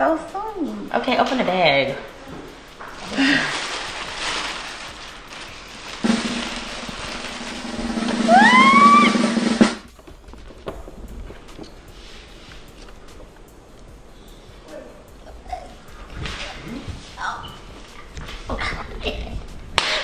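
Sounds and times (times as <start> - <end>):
snare drum roll: 6.0 - 9.9
rising cry: 8.0 - 9.7.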